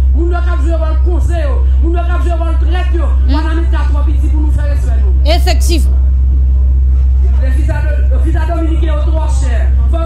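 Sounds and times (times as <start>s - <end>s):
loud steady low hum: 0.0s - 10.0s
woman speaking into a microphone: 3.2s - 3.6s, 5.3s - 5.9s.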